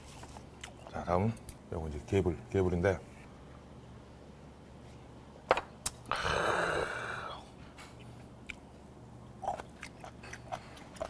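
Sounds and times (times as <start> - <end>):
man exhaling loudly: 6.1 - 7.5.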